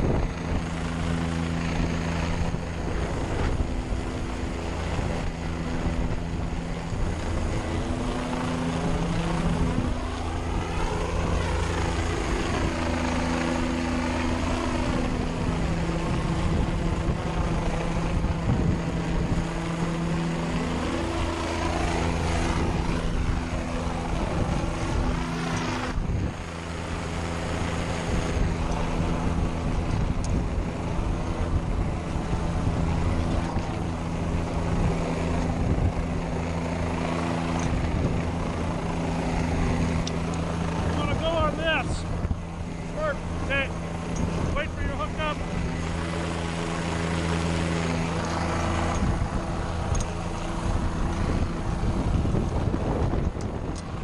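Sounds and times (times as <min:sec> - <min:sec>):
helicopter rotor beat: 0:00.0 - 0:54.0.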